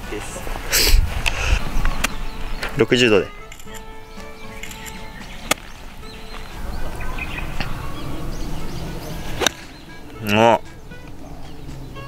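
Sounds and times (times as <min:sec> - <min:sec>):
golf club striking ball: 0:03.4 - 0:06.0, 0:06.8 - 0:11.6.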